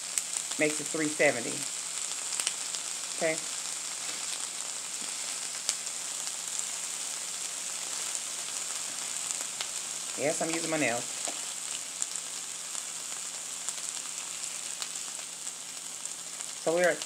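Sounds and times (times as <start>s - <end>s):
food sizzling on a griddle: 0.0s - 17.0s.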